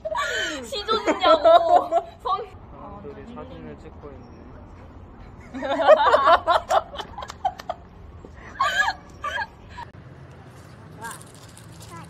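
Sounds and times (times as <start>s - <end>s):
young woman laughing: 0.0s - 2.3s, 8.4s - 9.9s
faint outdoor hum: 0.0s - 12.0s.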